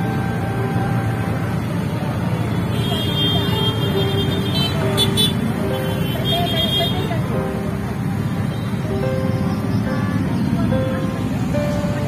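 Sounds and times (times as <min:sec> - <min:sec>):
car and motorbike engines: 0:00.0 - 0:12.0
people's voices: 0:00.0 - 0:12.0
car horns: 0:02.6 - 0:07.2.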